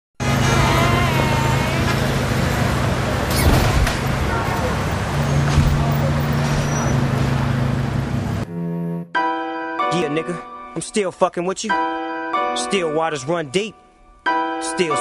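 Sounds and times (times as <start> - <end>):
road and traffic noise: 0.2 - 8.6.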